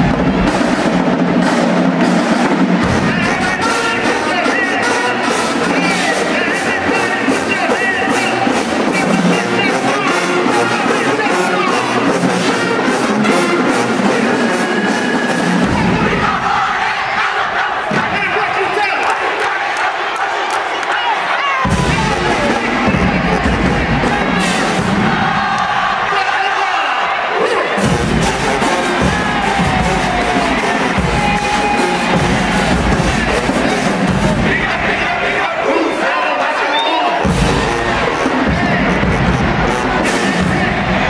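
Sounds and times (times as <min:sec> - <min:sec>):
crowd shouting and cheering: 0:00.0 - 0:41.0
marching band brass and drums: 0:00.0 - 0:41.0
low drum hit: 0:37.3 - 0:41.0.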